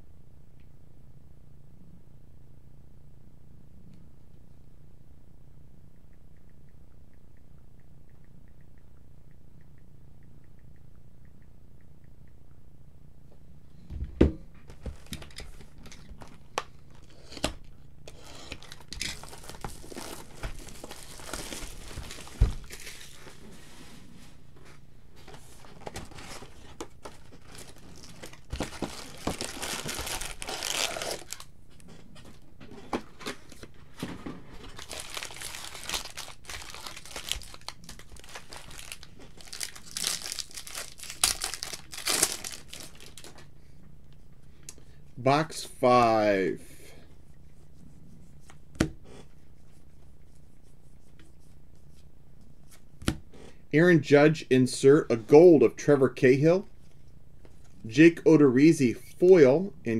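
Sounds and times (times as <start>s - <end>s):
plastic wrapping crinkling and tearing: 18.1s - 23.4s, 25.6s - 31.5s, 34.6s - 43.5s.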